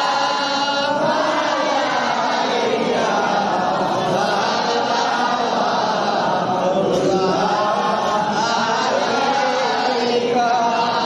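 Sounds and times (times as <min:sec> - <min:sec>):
male voices chanting devotional song: 0:00.0 - 0:11.0.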